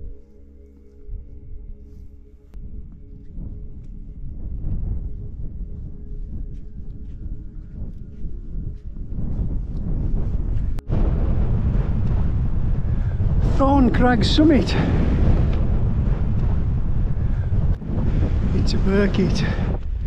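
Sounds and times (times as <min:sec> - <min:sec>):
wind buffeting microphone: 0:02.5 - 0:20.0
man speaking: 0:13.4 - 0:15.0, 0:18.5 - 0:19.7.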